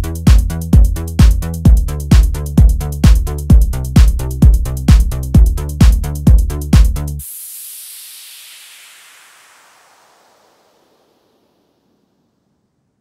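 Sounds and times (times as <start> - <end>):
drum machine beat: 0.0 - 7.2
falling synthesized noise sweep: 7.2 - 12.3.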